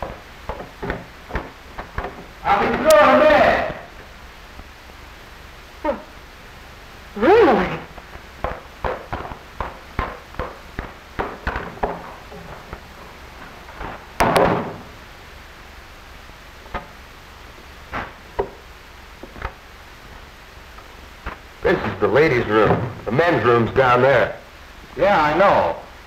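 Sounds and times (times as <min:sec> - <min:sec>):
knocks: 0:00.0 - 0:03.0, 0:08.4 - 0:12.8, 0:13.8 - 0:14.9
quick footsteps: 0:07.9 - 0:15.0
door banging: 0:13.8 - 0:15.0.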